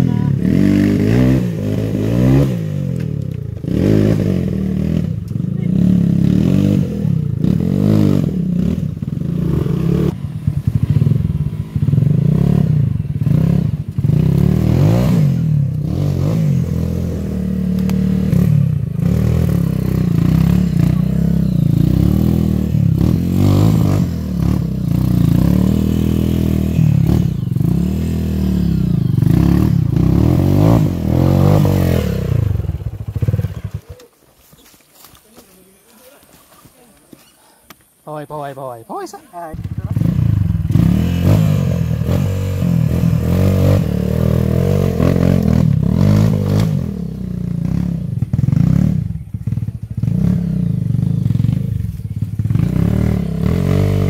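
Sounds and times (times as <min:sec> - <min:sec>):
dirt bike engine revving: 0:00.0 - 0:34.1, 0:38.9 - 0:54.0.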